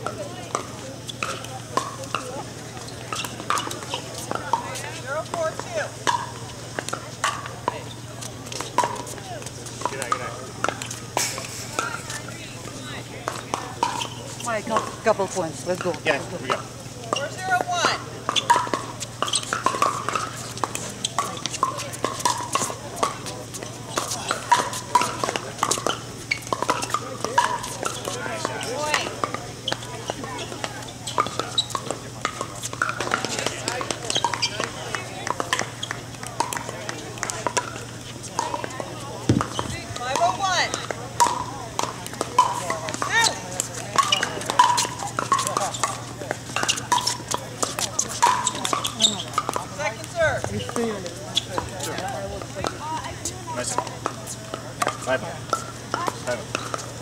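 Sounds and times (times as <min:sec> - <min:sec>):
paddles striking plastic ball: 0:38.4 - 0:49.7.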